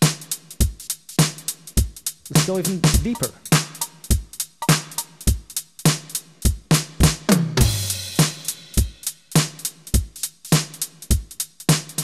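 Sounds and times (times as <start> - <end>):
closed hi-hats: 0.0 - 12.0
drum machine loop: 0.0 - 12.0.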